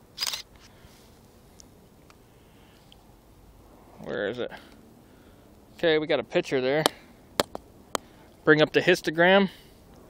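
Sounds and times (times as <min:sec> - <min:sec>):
camera shutter clack: 0:00.2 - 0:00.5.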